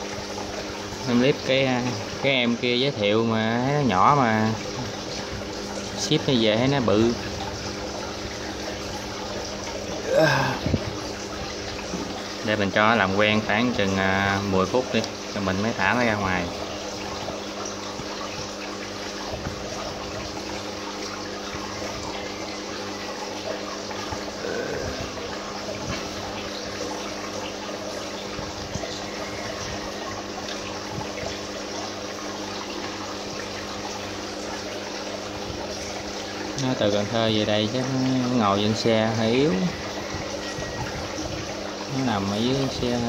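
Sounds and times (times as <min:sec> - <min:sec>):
aquarium pump humming: 0:00.0 - 0:43.0
water splashing and trickling: 0:00.0 - 0:43.0.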